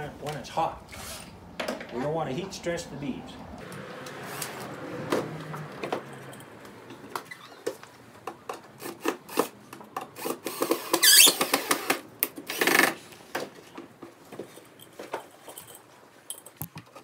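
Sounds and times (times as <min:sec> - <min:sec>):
cordless drill drilling into wood: 0:10.2 - 0:13.0.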